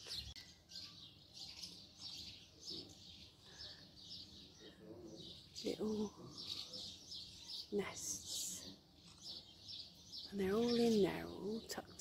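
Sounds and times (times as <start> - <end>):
small birds chirping: 0.0 - 12.0.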